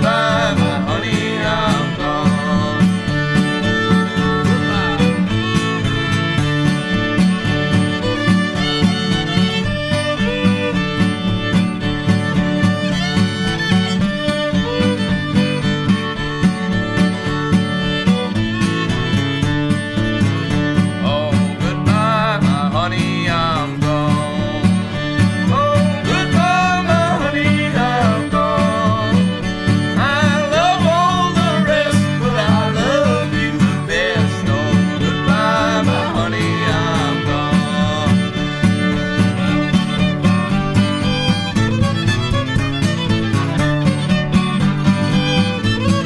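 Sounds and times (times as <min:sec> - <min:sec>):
fiddle melody: 0:00.0 - 0:46.0
plucked string accompaniment: 0:00.0 - 0:46.0.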